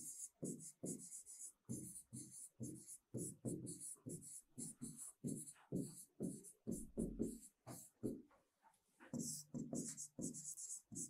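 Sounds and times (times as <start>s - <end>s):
scratchy handwriting strokes: 0.0s - 8.1s, 9.2s - 11.0s.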